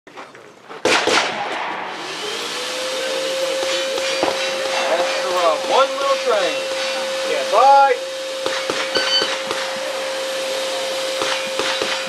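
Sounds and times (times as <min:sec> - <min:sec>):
air rushing from blower: 0:01.4 - 0:12.0
motor whine: 0:01.8 - 0:12.0.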